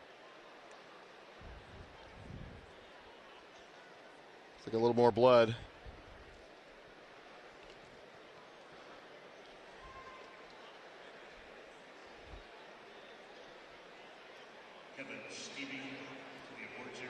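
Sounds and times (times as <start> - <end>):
murmur of distant crowd: 0.0 - 17.0.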